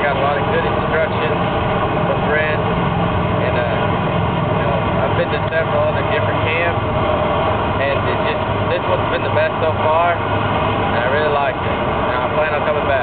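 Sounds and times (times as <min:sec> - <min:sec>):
low rumble and hiss: 0:00.0 - 0:13.0.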